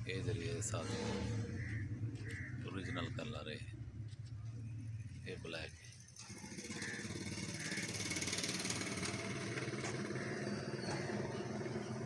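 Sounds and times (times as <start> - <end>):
motor running steadily: 3.8 - 12.0.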